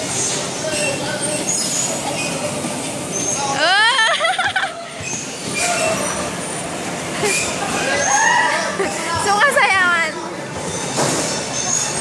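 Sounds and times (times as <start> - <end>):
bumper car motors and wheels: 0.0 - 12.0.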